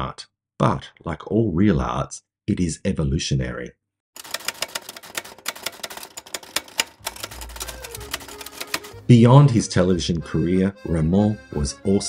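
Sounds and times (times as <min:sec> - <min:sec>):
typewriter keys clacking: 0:04.2 - 0:09.0.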